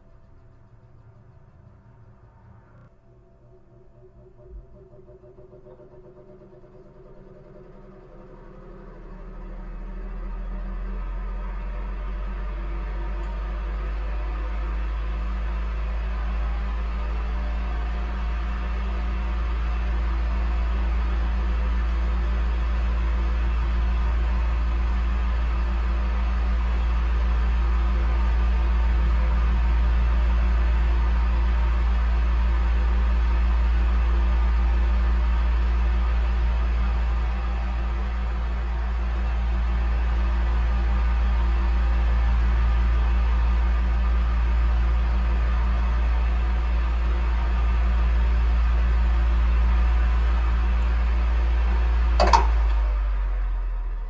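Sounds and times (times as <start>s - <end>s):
electric fan running: 0.0s - 53.9s
short click: 52.2s - 52.8s.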